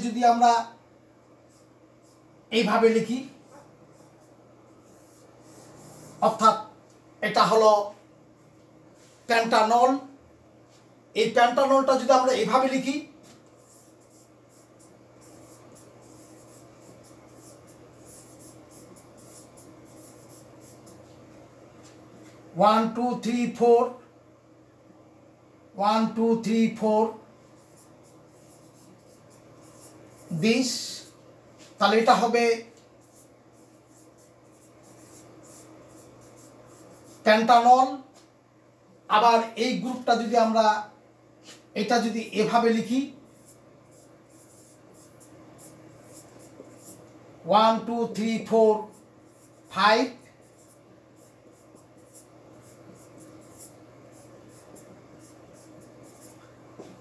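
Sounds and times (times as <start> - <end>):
low room hum: 0.0 - 57.0
marker writing on whiteboard: 1.3 - 6.7, 11.4 - 22.4, 26.1 - 38.2, 41.5 - 57.0.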